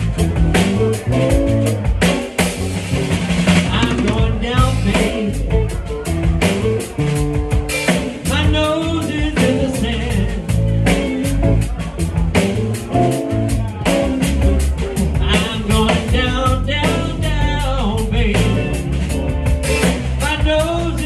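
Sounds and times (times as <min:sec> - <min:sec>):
lead guitar bent notes: 0:00.0 - 0:20.3
live blues band playing: 0:00.0 - 0:21.0.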